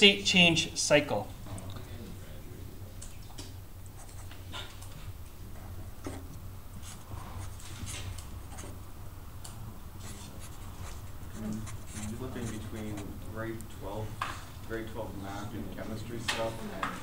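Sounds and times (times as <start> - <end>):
steady low hum: 0.0 - 17.0
marker writing on paper: 6.0 - 8.8, 10.0 - 13.2.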